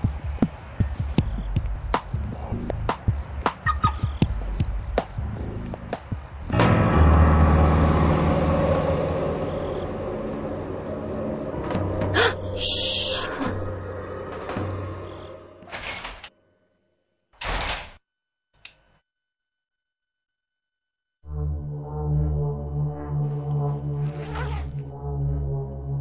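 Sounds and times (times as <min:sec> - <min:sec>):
quiet music: 0:03.6 - 0:15.8
suspenseful music swell with deep bass: 0:03.7 - 0:15.6, 0:21.2 - 0:26.0.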